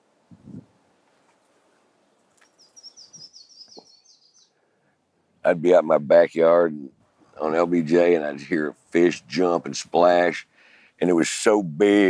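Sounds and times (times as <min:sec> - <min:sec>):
small bird singing: 0:02.0 - 0:04.6.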